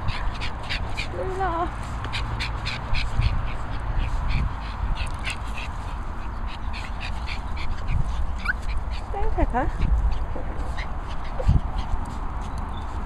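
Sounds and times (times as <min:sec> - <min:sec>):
wind rumble on microphone: 0:00.0 - 0:13.0.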